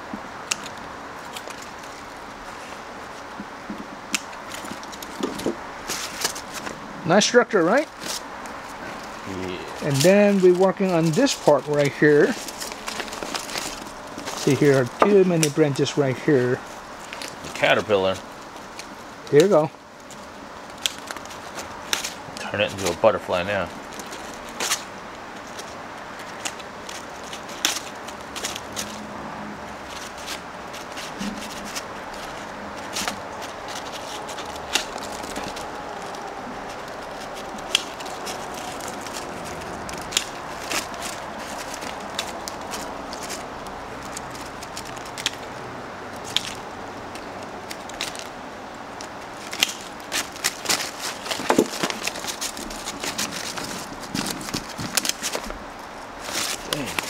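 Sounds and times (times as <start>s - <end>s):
pruning scissors snipping twigs: 4.0s - 6.7s, 29.9s - 57.0s.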